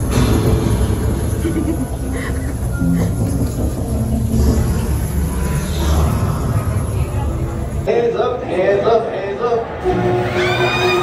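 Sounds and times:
loud low rumble: 0.0 - 7.9.

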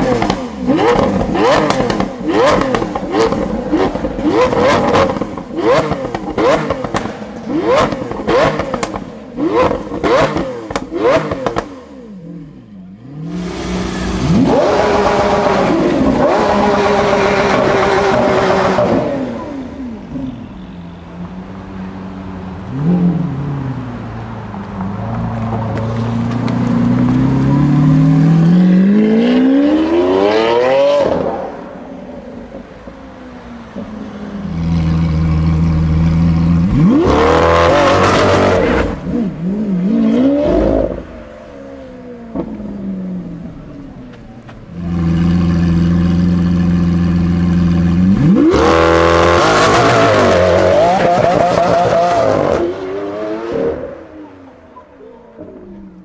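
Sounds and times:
sports car engine revving: 0.0 - 20.2, 25.4 - 32.6, 33.7 - 56.0.

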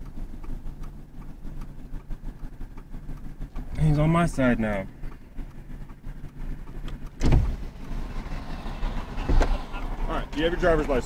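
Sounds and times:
low rumble in car cabin: 0.0 - 11.0
loud thump: 7.2 - 7.6.

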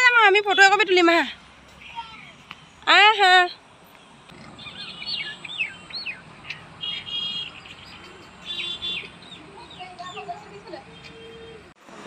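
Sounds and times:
small birds chirping: 0.2 - 11.8
buzzy bird calls: 4.3 - 11.7.

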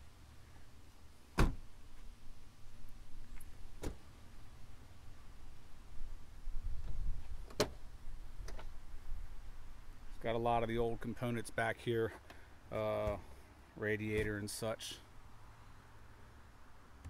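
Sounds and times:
car door shutting: 1.3 - 1.6.

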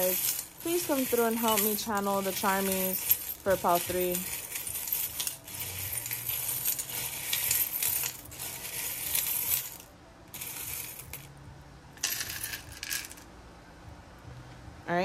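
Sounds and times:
metal charms clinking in bowl: 0.0 - 11.3, 12.0 - 13.2.

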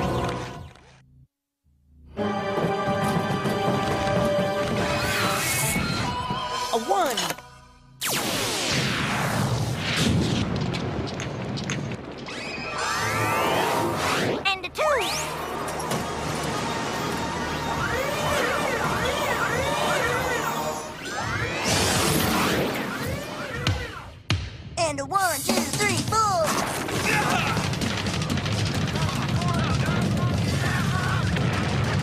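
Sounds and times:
crash and boom effects: 8.0 - 14.4
cartoon background music: 12.9 - 24.1.

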